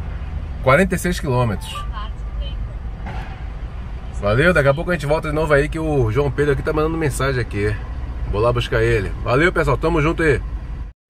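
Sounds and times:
car engine and road noise: 0.0s - 10.9s.

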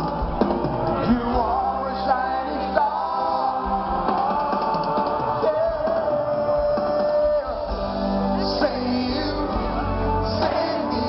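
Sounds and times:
festival crowd: 0.0s - 11.0s
live pop band with singing: 0.0s - 11.0s.

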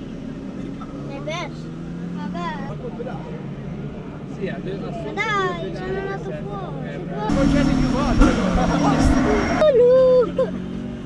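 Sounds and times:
people's voices: 0.4s - 11.0s.

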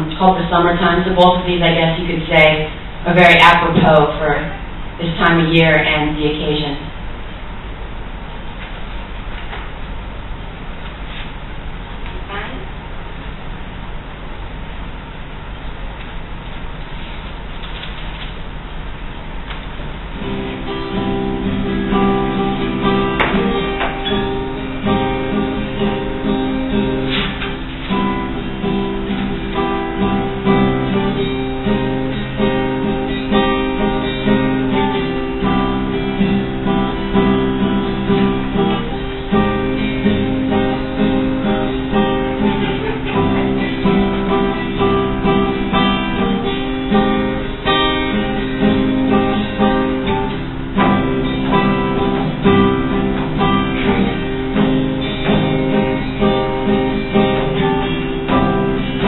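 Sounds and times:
acoustic guitar chords: 0.0s - 59.0s.

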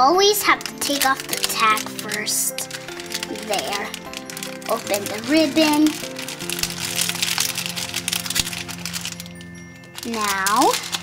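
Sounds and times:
background music with held notes: 0.0s - 11.0s
tinsel ribbon crinkling: 0.0s - 11.0s.

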